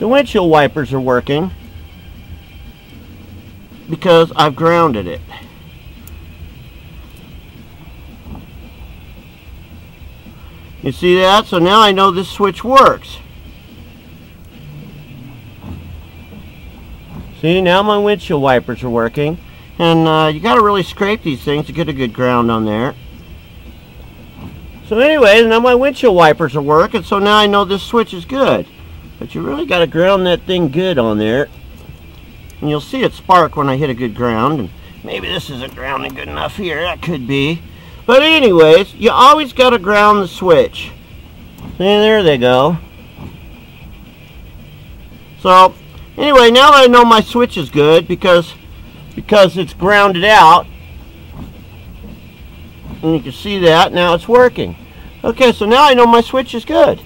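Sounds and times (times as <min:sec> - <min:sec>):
wiper motor humming: 0:00.0 - 0:57.0.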